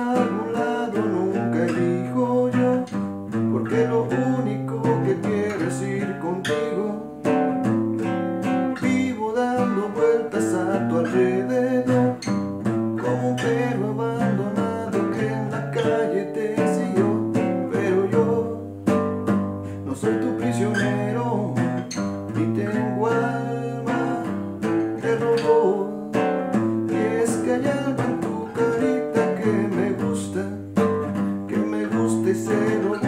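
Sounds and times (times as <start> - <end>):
acoustic guitar strumming: 0.0 - 33.0.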